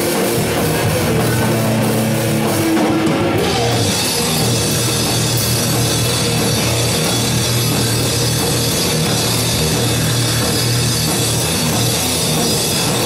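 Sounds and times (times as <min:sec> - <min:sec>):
heavy rock band playing: 0:00.0 - 0:13.0.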